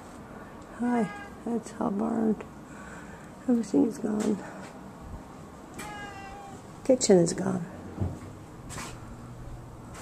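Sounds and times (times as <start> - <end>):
cat meowing: 0.9 - 1.4, 5.7 - 6.7.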